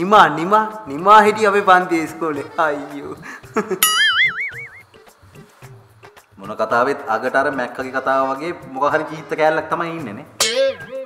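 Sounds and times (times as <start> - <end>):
cartoon wobbling whistle: 3.8 - 4.8.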